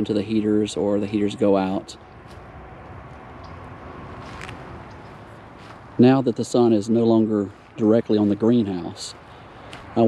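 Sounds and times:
low outdoor background noise: 0.0 - 10.0.

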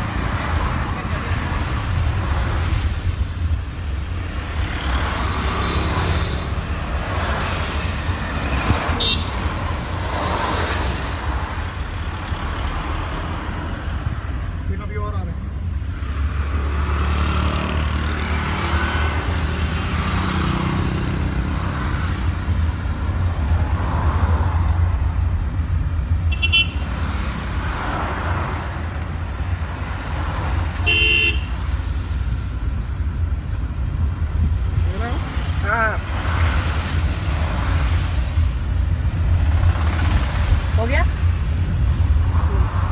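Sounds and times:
car road and engine rumble: 0.0 - 42.9
passing traffic: 0.0 - 42.9
vehicle horn toots: 30.8 - 31.5.

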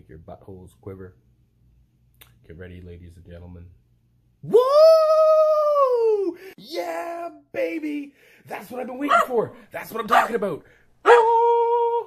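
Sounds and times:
man yelling woo: 4.4 - 7.2, 11.1 - 12.0.

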